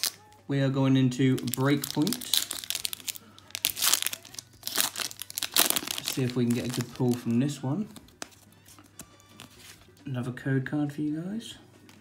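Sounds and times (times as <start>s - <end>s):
foil wrapper crinkling: 1.3s - 8.4s.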